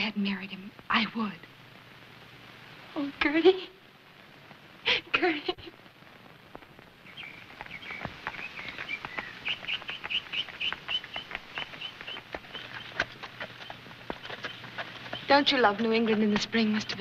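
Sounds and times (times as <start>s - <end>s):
horse hooves clip-clopping: 6.6s - 17.0s
songbirds chirping: 6.8s - 17.0s.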